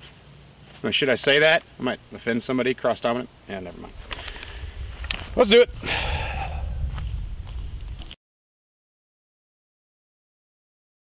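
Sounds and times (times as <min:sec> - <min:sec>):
wind rumble on microphone: 0:03.7 - 0:08.2
short breathy hiss: 0:04.0 - 0:05.2, 0:05.8 - 0:06.9.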